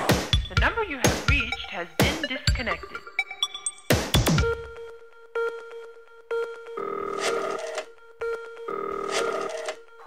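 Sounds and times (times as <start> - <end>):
buzzing telephone ring: 6.7 - 9.9.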